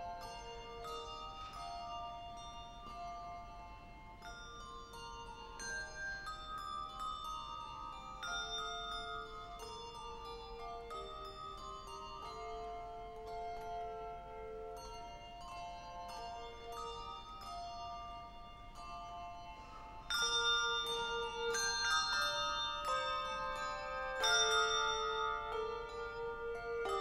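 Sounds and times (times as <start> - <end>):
handbell choir ringing: 0.0 - 27.0.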